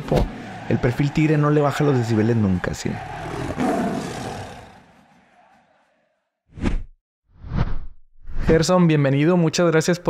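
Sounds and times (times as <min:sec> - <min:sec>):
tiger roar: 0:02.8 - 0:05.0.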